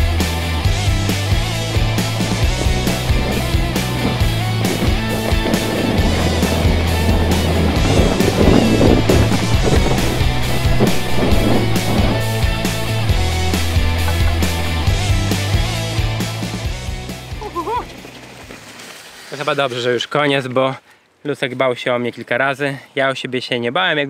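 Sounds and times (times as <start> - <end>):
background music with beat: 0.0 - 17.7
bike tyres rattling on trail: 0.0 - 21.0.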